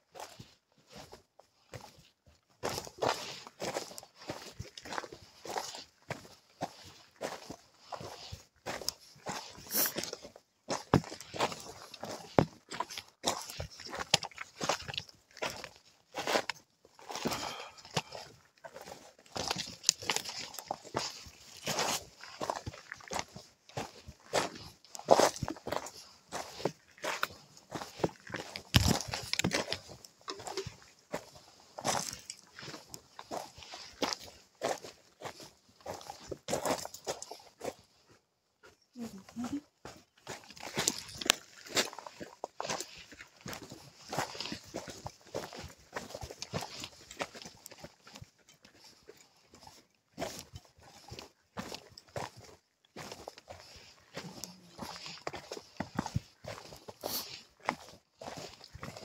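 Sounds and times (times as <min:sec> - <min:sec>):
footsteps on trail: 0:00.0 - 0:59.0.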